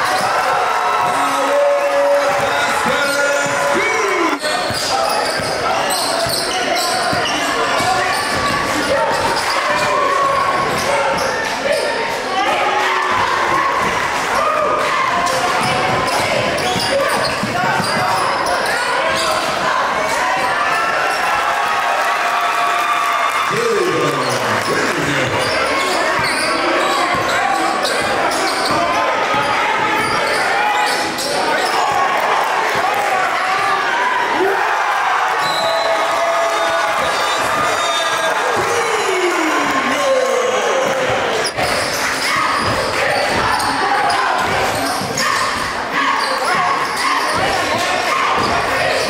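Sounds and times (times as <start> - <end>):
indistinct voices: 0.0 - 21.4, 22.8 - 49.0
basketball bouncing on court: 15.4 - 19.6, 24.9 - 30.4.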